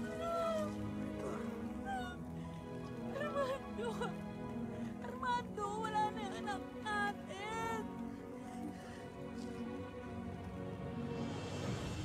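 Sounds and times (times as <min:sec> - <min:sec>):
sombre background music: 0:00.0 - 0:12.0.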